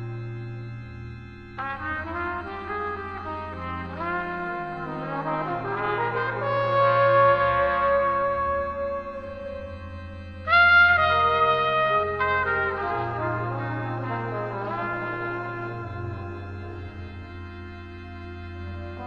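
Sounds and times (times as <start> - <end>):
trombone: 0.0 - 19.0
trumpet: 1.4 - 19.0
slow jazz: 1.8 - 19.0.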